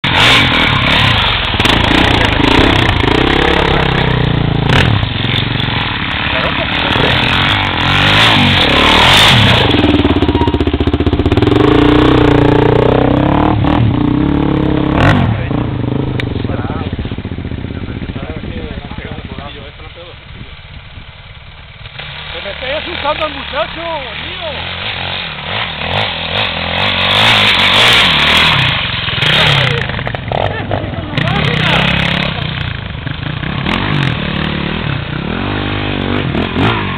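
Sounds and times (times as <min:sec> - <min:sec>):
motorcycle engine revving: 0:00.0 - 0:36.9.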